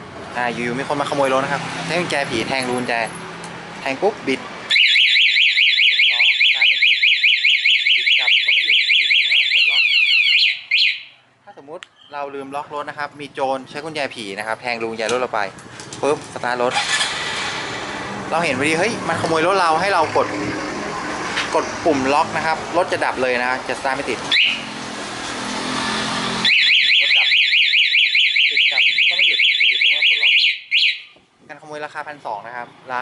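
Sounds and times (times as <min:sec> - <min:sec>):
alarm chirps: 0:04.7 - 0:11.2, 0:24.3 - 0:24.7, 0:26.4 - 0:31.2
motorcycle alarm siren warbling: 0:04.7 - 0:11.2, 0:24.3 - 0:24.9, 0:25.5 - 0:31.2.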